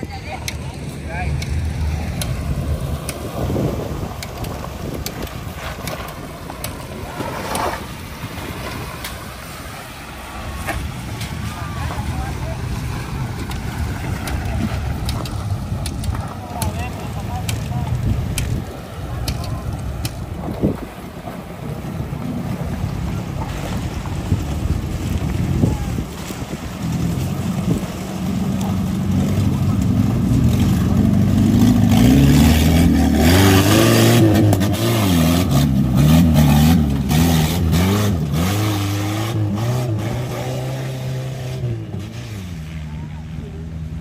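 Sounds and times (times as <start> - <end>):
water splashing: 0.0 - 43.4
jeep engine revving: 0.0 - 44.0.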